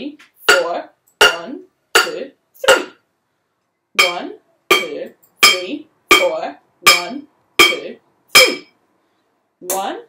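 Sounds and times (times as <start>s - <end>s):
wooden spoons striking pots: 0.5s - 3.0s, 4.0s - 8.7s.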